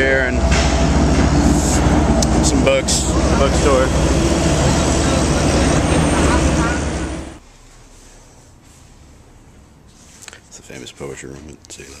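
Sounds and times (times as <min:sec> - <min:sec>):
heavy traffic rumble: 0:00.0 - 0:10.6.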